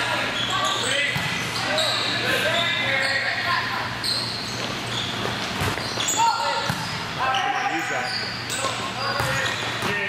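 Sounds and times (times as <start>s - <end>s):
voices echoing in a gym: 0.0s - 10.0s
sneakers squeaking on court floor: 0.1s - 10.0s.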